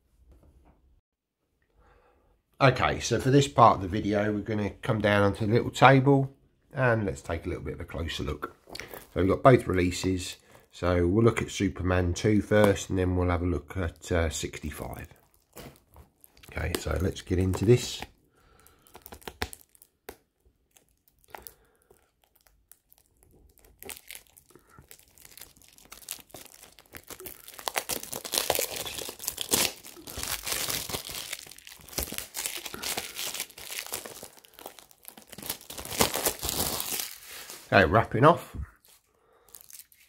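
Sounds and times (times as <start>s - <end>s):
plastic wrap crinkling and tearing: 14.5s - 38.0s, 38.8s - 40.0s.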